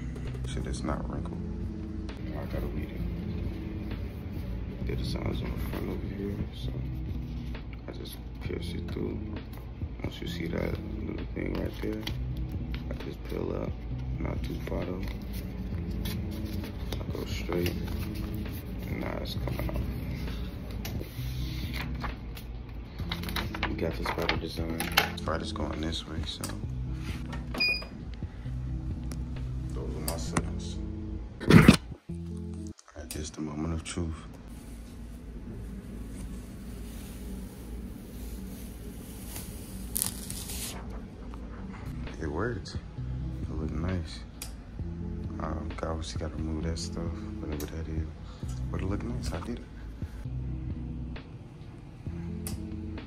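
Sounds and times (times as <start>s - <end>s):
steady low hum: 0.0s - 24.0s, 24.6s - 32.7s, 33.5s - 53.0s
vinyl carrier sheet peeling: 34.5s - 41.1s.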